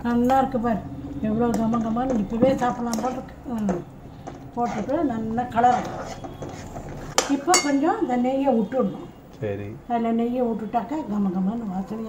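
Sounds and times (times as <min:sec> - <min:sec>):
metal spatula clinking on pan: 0:07.2 - 0:07.8.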